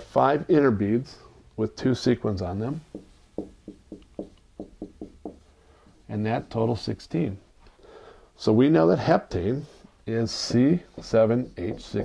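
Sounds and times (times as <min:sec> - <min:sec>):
marker tapping on whiteboard: 0:02.8 - 0:05.4, 0:11.0 - 0:12.0.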